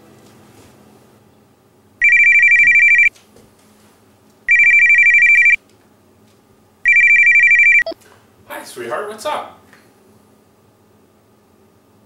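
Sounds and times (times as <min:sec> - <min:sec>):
phone ringing electronic trill: 0:02.0 - 0:03.1, 0:04.5 - 0:05.6, 0:06.9 - 0:08.0.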